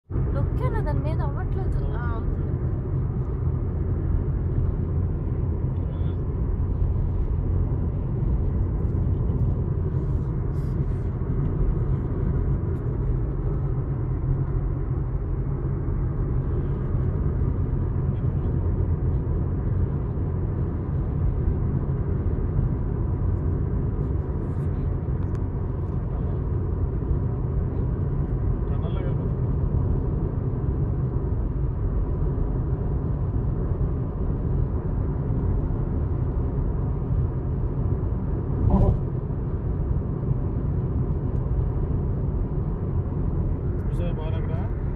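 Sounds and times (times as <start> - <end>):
car road rumble: 0.0 - 44.9
engine drone: 0.0 - 44.9.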